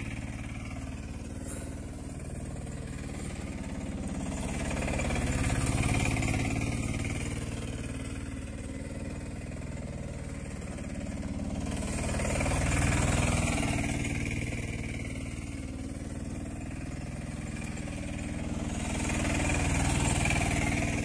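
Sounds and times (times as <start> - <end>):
auto-rickshaw engine running: 0.0 - 21.0.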